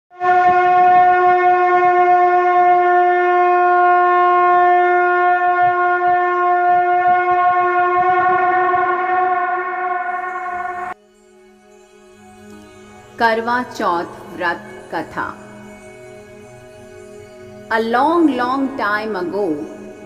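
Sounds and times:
conch shell blown: 0:00.1 - 0:11.3.

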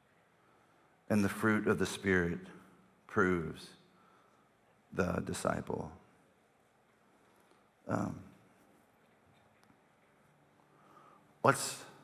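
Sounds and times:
man saying um: 0:07.9 - 0:08.3.

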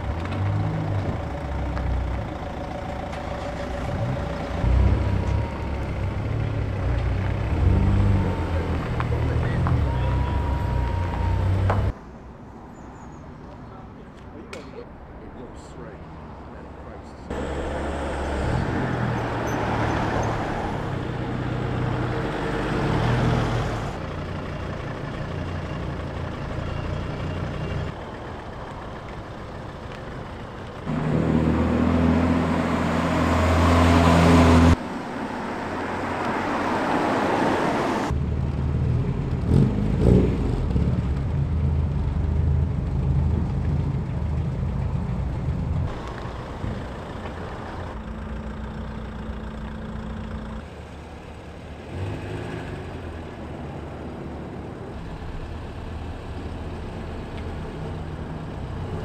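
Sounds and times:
car engines at low speed: 0:00.0 - 0:59.0.

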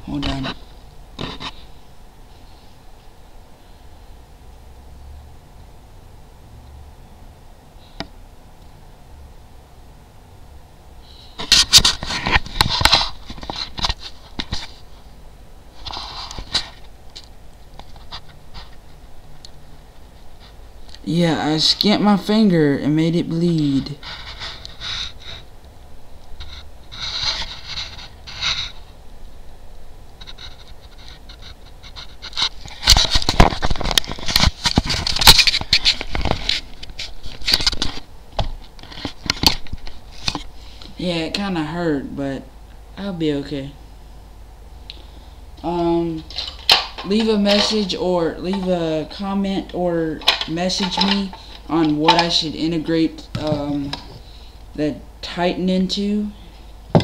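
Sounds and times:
objects scraping and rustling: 0:00.2 - 0:03.1, 0:11.1 - 0:15.1, 0:15.7 - 0:20.6, 0:23.8 - 0:25.5, 0:26.4 - 0:29.0, 0:30.2 - 0:41.0, 0:46.0 - 0:49.4, 0:50.1 - 0:54.6.

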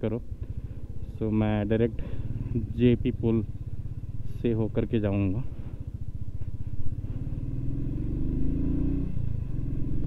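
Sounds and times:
motorcycle engine accelerating: 0:00.3 - 0:10.0.

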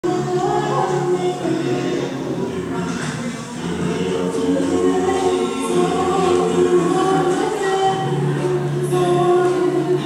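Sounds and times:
choir singing long notes: 0:00.0 - 0:10.0.

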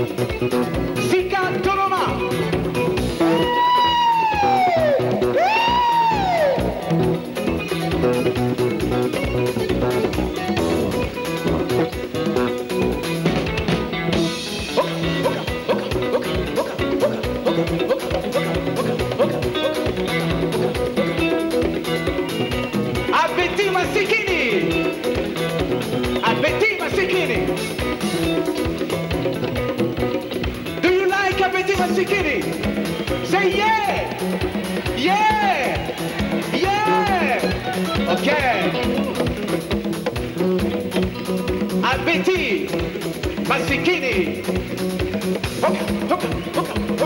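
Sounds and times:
drum kit: 0:00.0 - 0:47.0
electric bass guitar: 0:00.0 - 0:47.0
electric guitars: 0:00.0 - 0:47.0
live band playing dance music: 0:00.0 - 0:47.0.

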